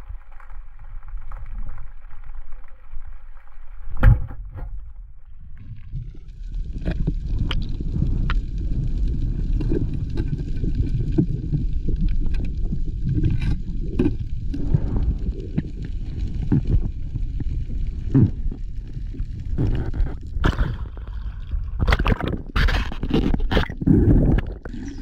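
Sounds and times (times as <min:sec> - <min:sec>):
muffled churning underwater noise: 0:00.0 - 0:25.0.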